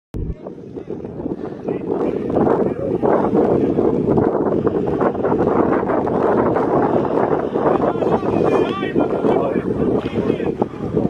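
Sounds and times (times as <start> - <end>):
wind buffeting microphone: 0.1 - 11.0.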